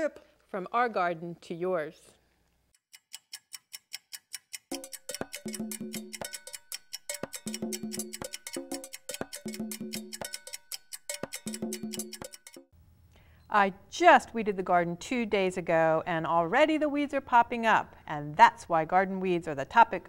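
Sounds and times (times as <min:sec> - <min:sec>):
clock ticking: 0:02.8 - 0:12.7
percussive jingle tune: 0:04.7 - 0:12.7.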